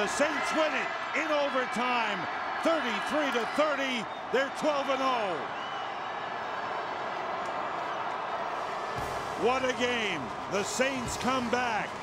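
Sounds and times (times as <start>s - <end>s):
stadium crowd din: 0.0s - 12.0s.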